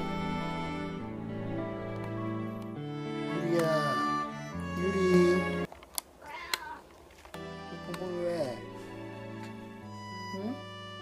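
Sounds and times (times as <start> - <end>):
cat meowing: 6.2 - 6.9.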